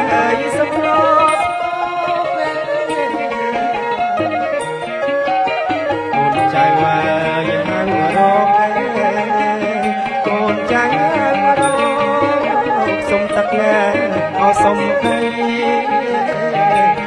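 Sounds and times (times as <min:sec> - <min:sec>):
band playing wedding music: 0:00.0 - 0:17.0.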